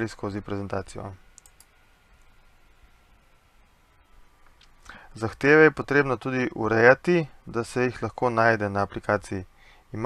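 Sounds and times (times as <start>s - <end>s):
person speaking: 0.0s - 1.3s
faint clicks: 1.3s - 2.3s.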